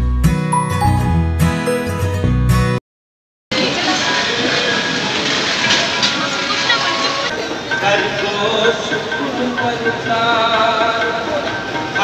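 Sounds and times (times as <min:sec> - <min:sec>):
crowd hubbub: 0:03.5 - 0:12.0.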